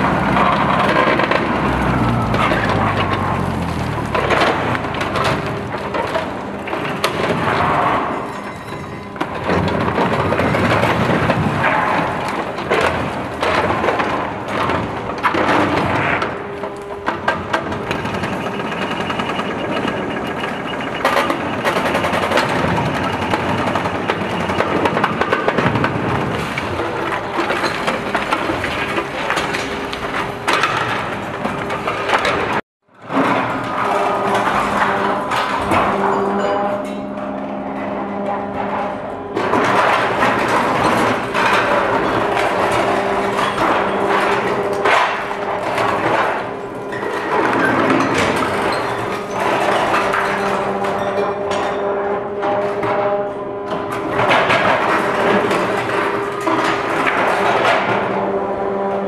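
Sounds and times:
concrete crunching and snapping: 0.0 - 8.1
concrete crunching and grinding: 0.0 - 59.0
excavator working: 0.0 - 59.0
machine engine and hydraulics droning: 0.0 - 59.0.

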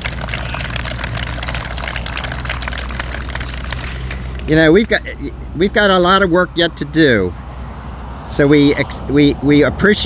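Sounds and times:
road traffic engine drone: 0.0 - 10.0.

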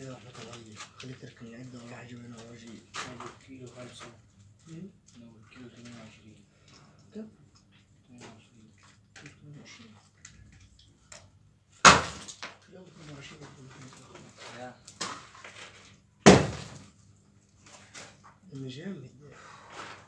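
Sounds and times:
loud sharp bangs: 16.2 - 16.8.

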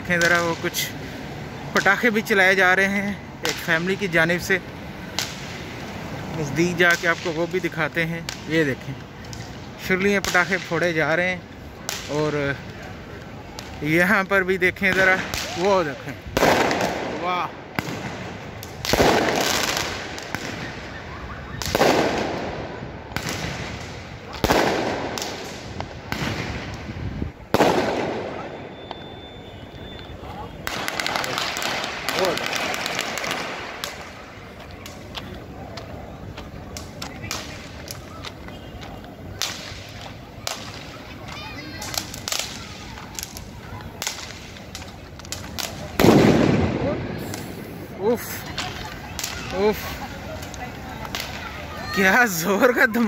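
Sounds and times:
fireworks bangs: 0.0 - 53.0
small firework pops: 0.1 - 0.9, 5.1 - 6.0, 6.8 - 11.0, 11.8 - 14.0, 14.8 - 52.0.

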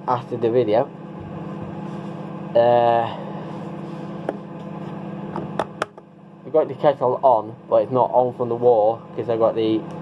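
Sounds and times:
electrical appliance humming: 0.0 - 10.0.

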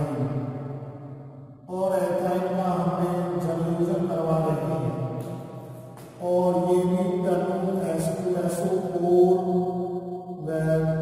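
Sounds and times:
man chanting in monotone: 0.0 - 0.6, 1.6 - 11.0.

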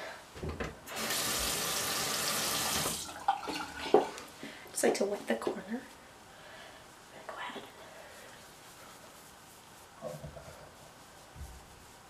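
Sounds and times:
sink tap turned on: 0.4 - 3.1
water running into basin: 0.9 - 4.3.

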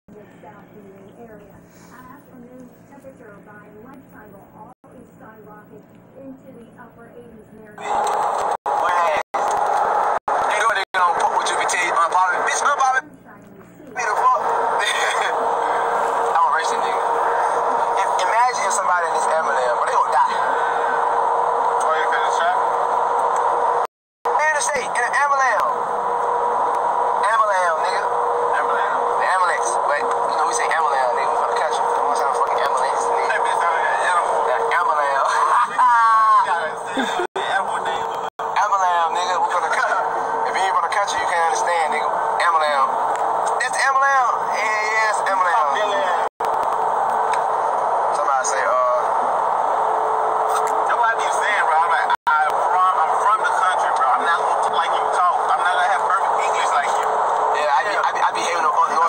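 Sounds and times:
steady car hum: 14.0 - 59.0
man talking in car: 27.2 - 42.9, 50.9 - 57.0.

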